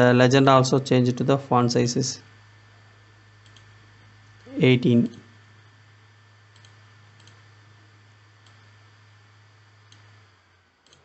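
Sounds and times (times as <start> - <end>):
low steady hum: 0.0 - 11.0
computer mouse clicks: 3.4 - 3.7, 6.5 - 7.5, 8.4 - 8.7, 9.8 - 10.2.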